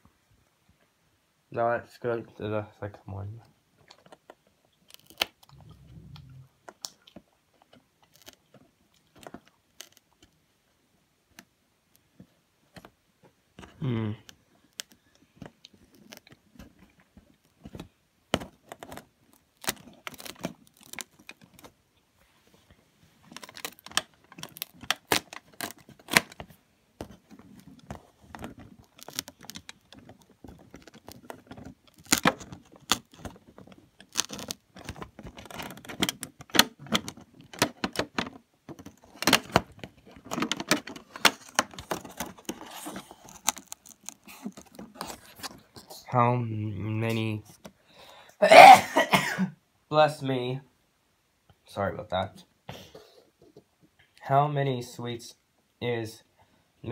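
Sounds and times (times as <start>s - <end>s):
cardboard crackling and clicking: 3.8s - 10.4s, 13.6s - 21.8s, 23.2s - 45.9s.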